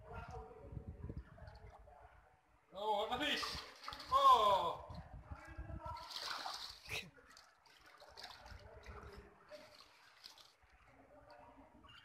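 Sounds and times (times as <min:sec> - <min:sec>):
muddy water splashing: 0:03.2 - 0:11.5.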